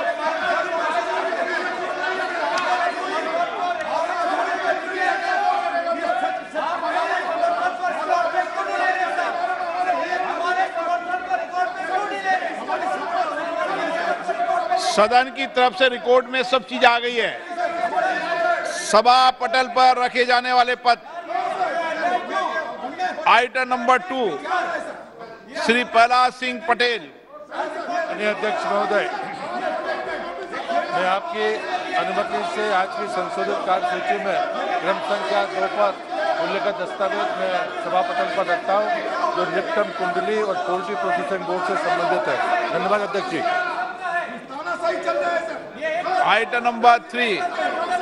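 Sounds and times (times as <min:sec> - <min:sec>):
din of overlapping voices: 0:00.0 - 0:48.0
man speaking: 0:14.8 - 0:17.4, 0:23.2 - 0:24.4, 0:25.3 - 0:27.1, 0:30.8 - 0:48.0.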